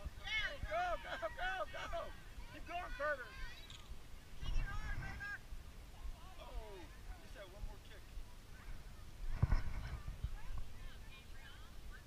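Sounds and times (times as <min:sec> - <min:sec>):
distant shouts and calls: 0:00.0 - 0:09.2
wind rumble on microphone: 0:04.4 - 0:05.4, 0:08.1 - 0:12.0.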